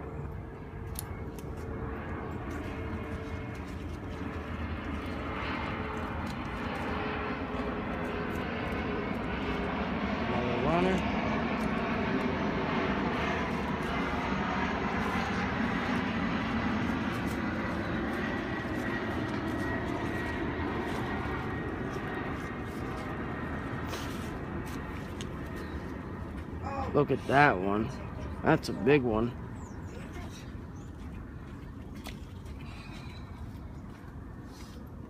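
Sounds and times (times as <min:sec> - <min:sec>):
distant engine humming: 0:00.0 - 0:35.0.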